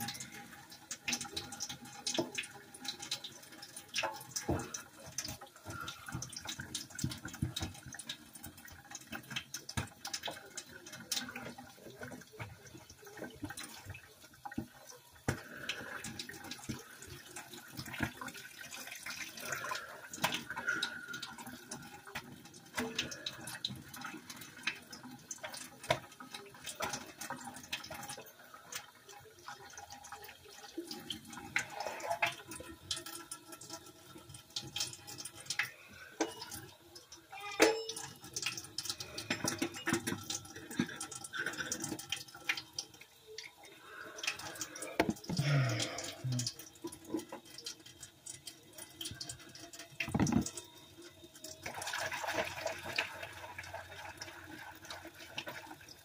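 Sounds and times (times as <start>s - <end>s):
sink tap running: 32.3s - 51.8s
dishes clinking together: 37.4s - 38.1s.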